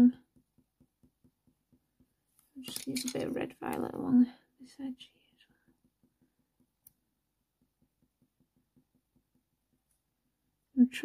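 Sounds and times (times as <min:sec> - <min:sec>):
pencil shading on paper: 0:00.1 - 0:02.5, 0:04.8 - 0:10.6.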